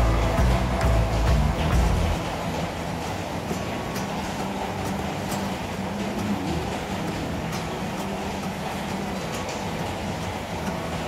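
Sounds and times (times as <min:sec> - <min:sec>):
steady rumbling: 0:00.0 - 0:03.6.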